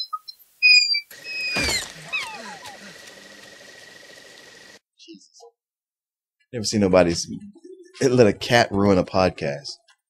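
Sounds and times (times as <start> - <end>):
creature calling and chirping: 0.6 - 3.5.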